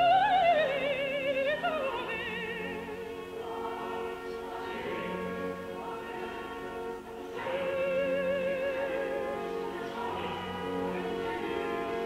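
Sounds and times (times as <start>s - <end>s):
choir holding long notes: 0.0s - 12.0s
lead voice singing with vibrato: 0.0s - 12.0s.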